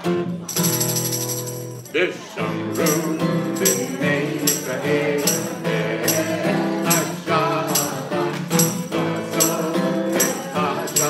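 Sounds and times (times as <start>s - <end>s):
acoustic guitar strumming: 0.0s - 11.0s
tambourine jingles: 0.4s - 2.0s, 2.6s - 11.0s.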